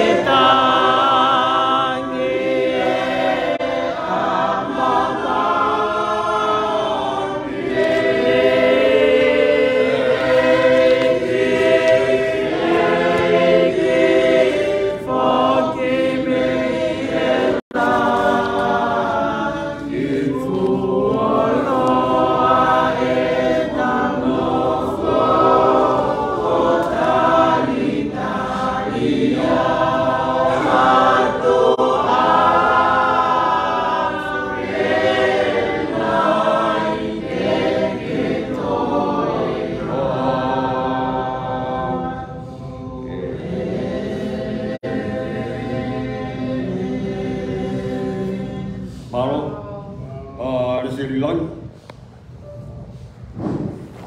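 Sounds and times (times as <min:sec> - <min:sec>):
choir singing a hymn: 0:00.0 - 0:54.0.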